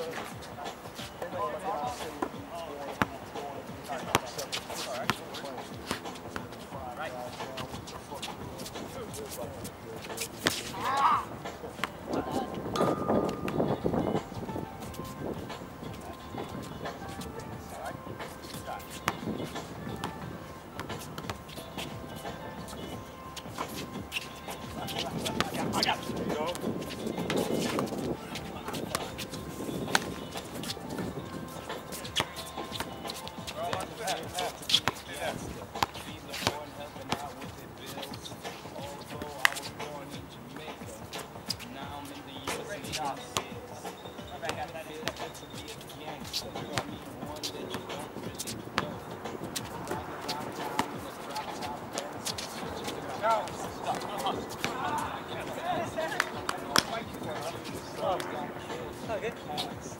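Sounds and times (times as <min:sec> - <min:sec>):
players' voices: 0:00.0 - 0:59.9
shoes thudding on court: 0:03.8 - 0:59.9
players calling out: 0:10.1 - 0:14.2, 0:49.5 - 0:59.9.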